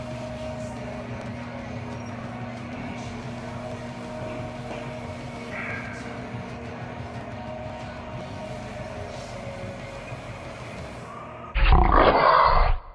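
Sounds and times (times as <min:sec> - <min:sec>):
faint music: 0:00.0 - 0:12.0
steady hum: 0:00.0 - 0:12.0.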